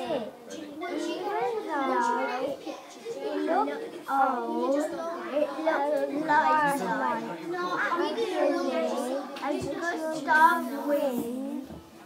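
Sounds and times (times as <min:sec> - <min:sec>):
child speaking: 0:00.0 - 0:11.8.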